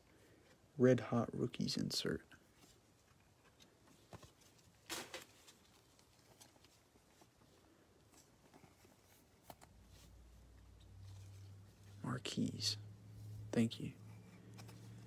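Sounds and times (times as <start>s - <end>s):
plastic sleeve rustle: 2.5s - 12.2s.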